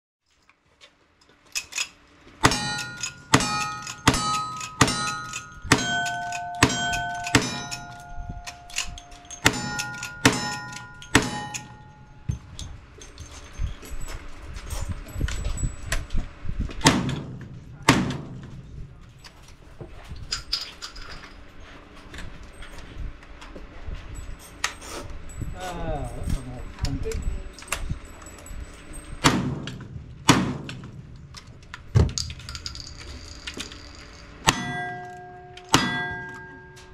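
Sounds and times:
handling clatter: 0:00.3 - 0:23.0, 0:26.0 - 0:36.9
steel target ringing: 0:02.4 - 0:12.4, 0:33.8 - 0:36.9
gunshots: 0:16.8 - 0:18.6, 0:29.2 - 0:31.0.

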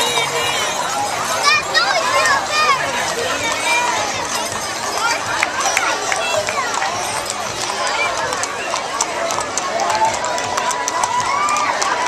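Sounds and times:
crowd chatter: 0:00.0 - 0:12.0
horse hooves clopping on pavement: 0:00.0 - 0:12.0.

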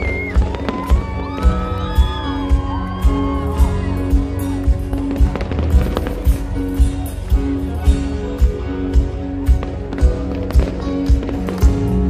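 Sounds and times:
kick drum beat: 0:00.0 - 0:06.0
fireworks crackling and popping: 0:00.0 - 0:12.0
live band playing loudly: 0:00.0 - 0:12.0.

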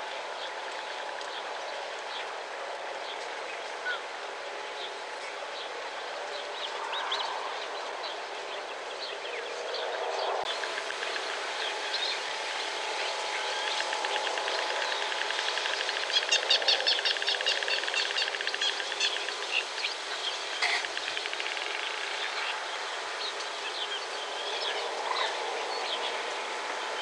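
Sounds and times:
birds chirping: 0:06.3 - 0:27.0.

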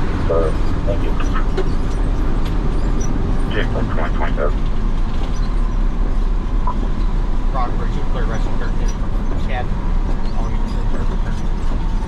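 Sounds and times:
engine and road rumble: 0:00.0 - 0:12.0.

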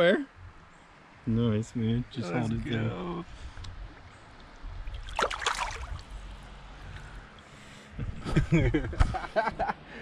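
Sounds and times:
steady water noise: 0:02.0 - 0:08.0
fish splashing in water: 0:04.4 - 0:06.4.

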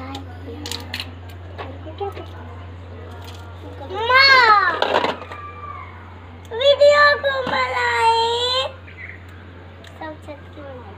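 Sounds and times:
steady low hum: 0:00.0 - 0:10.9.

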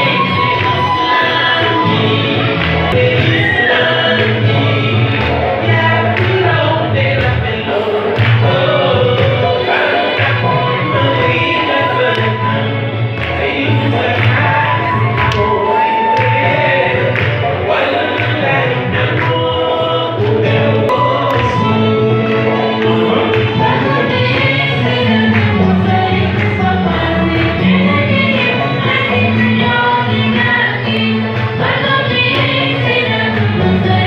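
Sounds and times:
amplified backing music with bass: 0:00.0 - 0:34.0
man singing into a microphone: 0:00.0 - 0:34.0.

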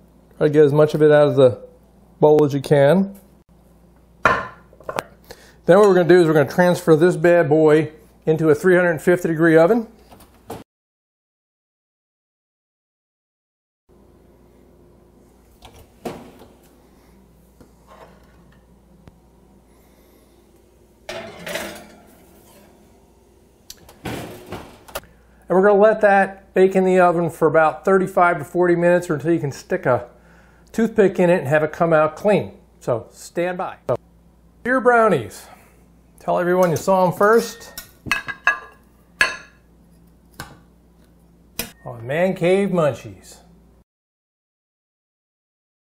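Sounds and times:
baking pan scraping clatter: 0:21.1 - 0:22.9.

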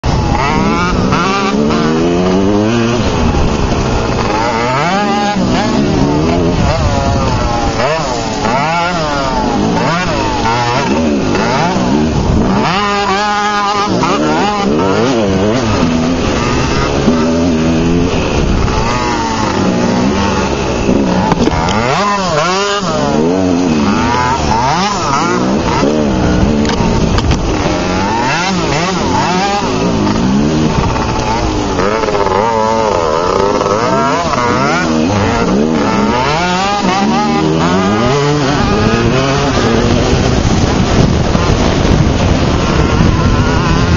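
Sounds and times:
dirt bike engines revving: 0:00.0 - 0:43.9.

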